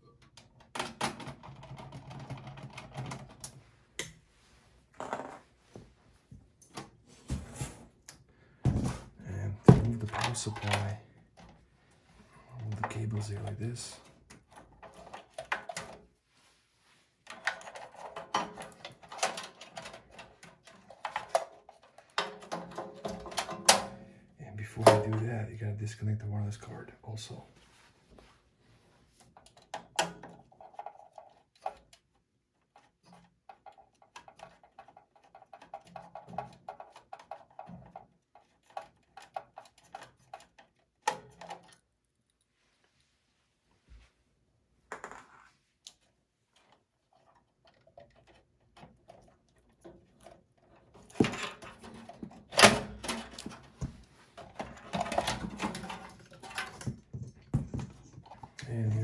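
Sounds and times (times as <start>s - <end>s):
metallic clattering and knocks: 50.1s - 58.6s.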